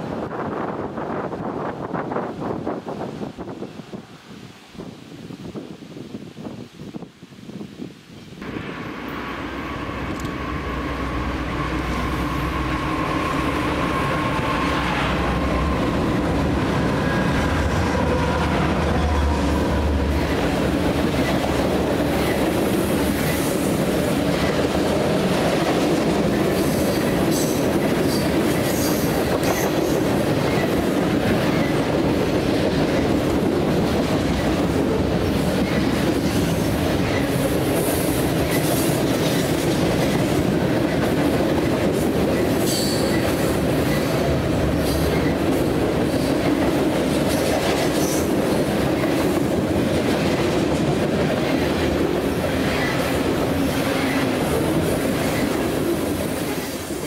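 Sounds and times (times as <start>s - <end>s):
train wheels clattering on rails: 11.5s - 57.0s
train wheels squealing: 26.6s - 30.7s, 42.4s - 44.1s.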